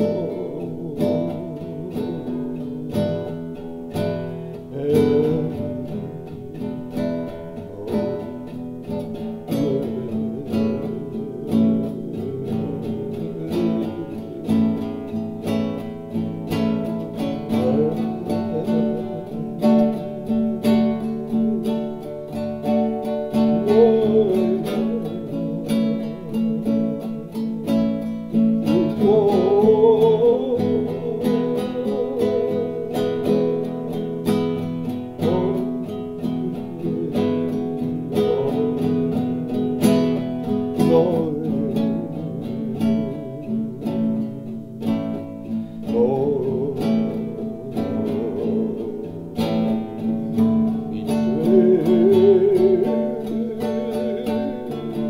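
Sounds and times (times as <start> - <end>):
acoustic guitar slow blues: 0.0 - 55.0
person singing: 0.0 - 55.0.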